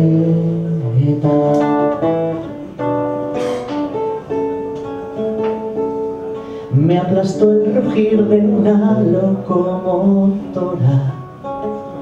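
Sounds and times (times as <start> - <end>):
classical guitar chords: 0.0 - 12.0.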